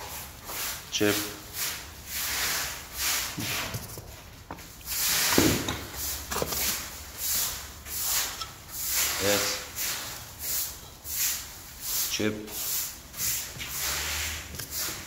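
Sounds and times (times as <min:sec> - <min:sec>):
concrete tiles scraping together: 0:04.8 - 0:11.4.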